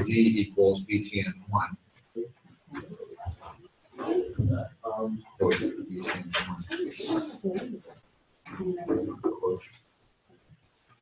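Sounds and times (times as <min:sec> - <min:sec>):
indistinct speech: 0:00.0 - 0:01.8, 0:02.8 - 0:07.9, 0:08.5 - 0:09.7.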